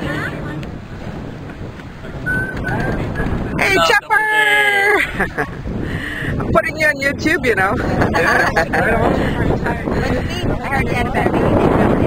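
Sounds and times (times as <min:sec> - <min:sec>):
wind noise on microphone: 0:00.0 - 0:12.0
people's voices: 0:02.0 - 0:12.0.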